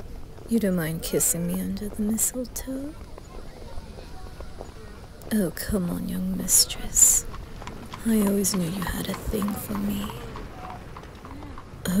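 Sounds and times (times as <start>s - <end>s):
faint voices: 0.0s - 12.0s
clip-clop knocks: 6.8s - 12.0s.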